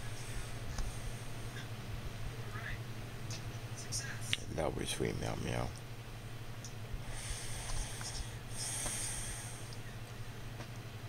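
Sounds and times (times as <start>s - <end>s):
steady low hum: 0.0s - 11.0s
long breathy exhale: 7.0s - 9.7s.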